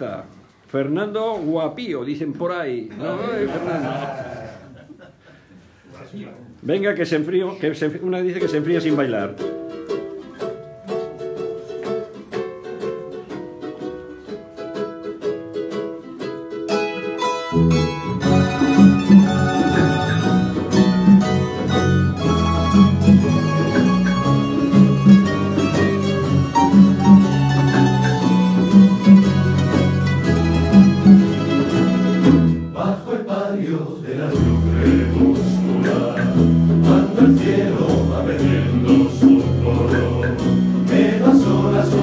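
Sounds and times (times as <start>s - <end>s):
plucked string ensemble: 8.2s - 32.8s, 34.2s - 42.0s
strummed chords: 8.4s - 32.9s, 34.3s - 42.0s
deep bass notes: 17.7s - 32.7s, 34.4s - 42.0s.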